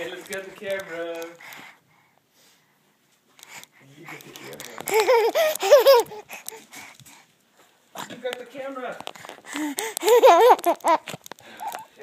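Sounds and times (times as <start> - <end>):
baby vocal sounds: 3.4 - 7.3, 9.2 - 12.0.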